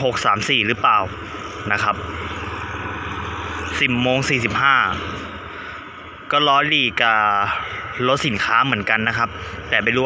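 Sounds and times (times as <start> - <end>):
distant diesel locomotive engine: 0.0 - 10.0.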